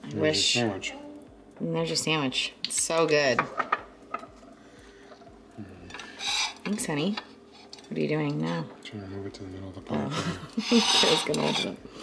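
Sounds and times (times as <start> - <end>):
plates clicking on countertop: 3.4 - 4.4.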